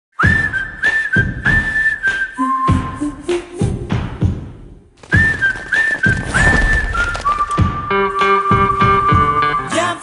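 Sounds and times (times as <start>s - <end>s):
whistled tune: 0.2s - 3.8s, 5.0s - 9.8s.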